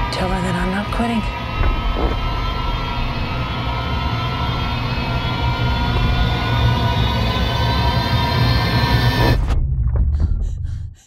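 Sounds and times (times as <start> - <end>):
dense drone of held tones: 0.0 - 9.6
deep rumble: 0.0 - 11.0.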